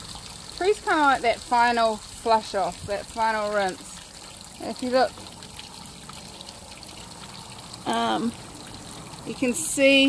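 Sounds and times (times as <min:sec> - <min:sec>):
soapy water trickling and dripping: 0:00.0 - 0:10.0.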